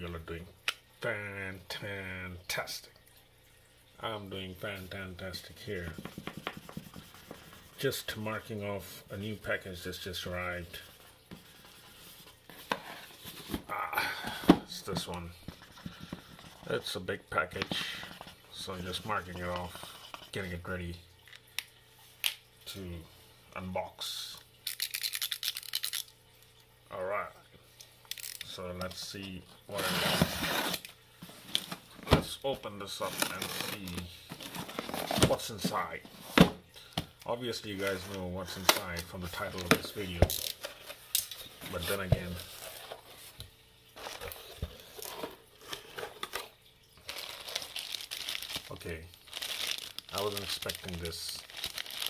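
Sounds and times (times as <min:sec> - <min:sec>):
plastic packaging crinkling: 0:24.6 - 0:26.2, 0:28.0 - 0:28.6, 0:33.0 - 0:36.4, 0:37.8 - 0:43.3, 0:43.9 - 0:52.0.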